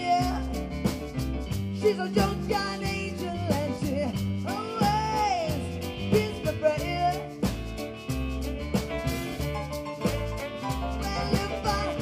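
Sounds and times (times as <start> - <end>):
rock blues band playing: 0.0 - 12.0
bending electric guitar lead: 3.9 - 12.0.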